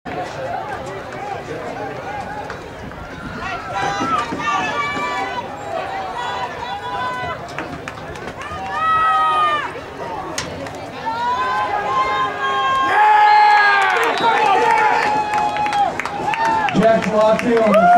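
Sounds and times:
crowd shouting and cheering: 0.1 - 17.9
long yells: 11.0 - 16.7.

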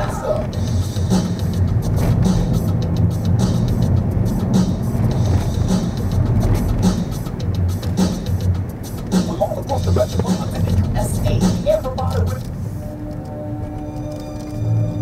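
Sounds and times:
bass-heavy music in car: 0.0 - 15.0
road and engine rumble: 0.0 - 15.0.

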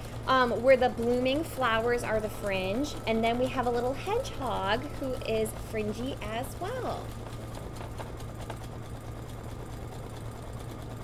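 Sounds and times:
needle ticking: 0.0 - 10.9
embroidery machine humming: 0.0 - 11.0.

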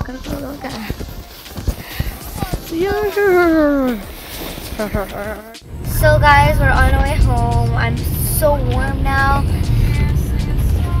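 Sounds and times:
girl crying out: 2.4 - 4.1.

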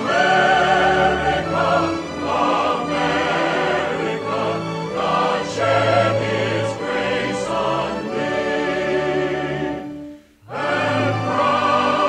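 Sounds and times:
choir singing held chords: 0.0 - 12.0.

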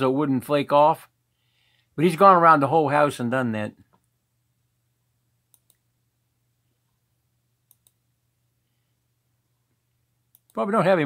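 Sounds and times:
computer mouse clicks: 5.5 - 5.8, 7.6 - 8.0, 10.3 - 10.6.

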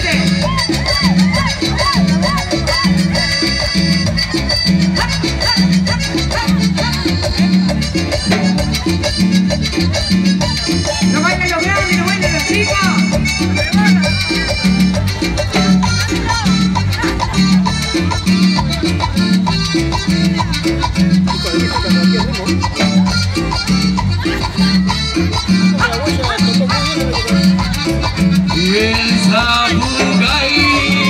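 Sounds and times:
live band playing dance music: 0.0 - 31.0.

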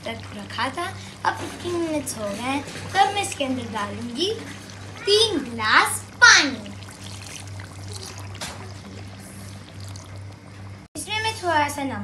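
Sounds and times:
water pouring into hot wok: 0.0 - 10.8.

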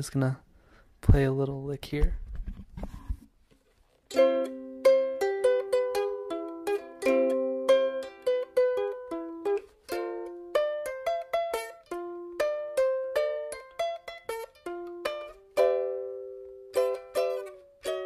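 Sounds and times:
ukulele plucked notes: 4.1 - 18.0.

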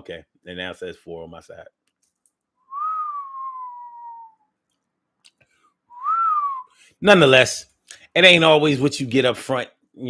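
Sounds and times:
man whistling: 2.6 - 4.5, 5.9 - 6.9.

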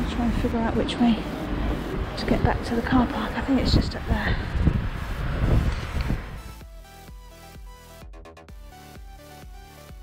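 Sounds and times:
street noise with low rumble: 0.0 - 8.8
electronic background music: 0.0 - 10.0.

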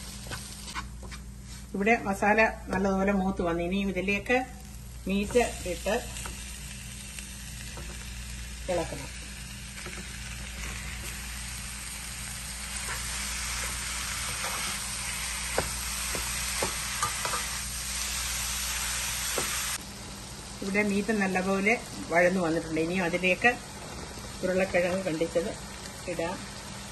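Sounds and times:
meat sizzling in a pan: 4.6 - 26.9
spatula stirring in pan: 12.7 - 17.7.

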